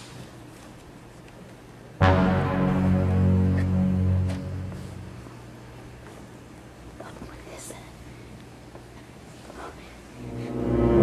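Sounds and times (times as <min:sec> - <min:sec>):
low hum: 0:02.0 - 0:06.0, 0:10.1 - 0:11.0
faint whispering: 0:07.0 - 0:08.4, 0:09.4 - 0:10.2.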